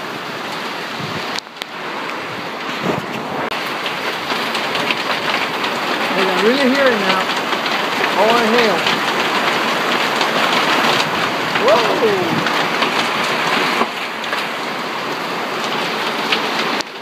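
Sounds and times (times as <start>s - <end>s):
hail and rain pelting: 0.0s - 17.0s
person calling out: 8.2s - 8.9s, 11.5s - 12.7s.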